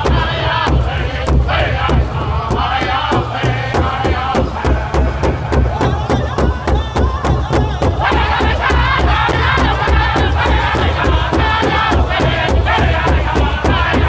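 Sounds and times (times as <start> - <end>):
large hide drum beating: 0.0 - 14.0
men singing together: 0.0 - 14.0.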